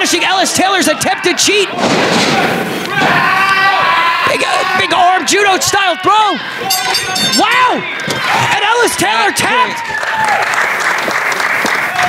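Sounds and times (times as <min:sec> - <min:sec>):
raised voices: 0:00.0 - 0:10.4.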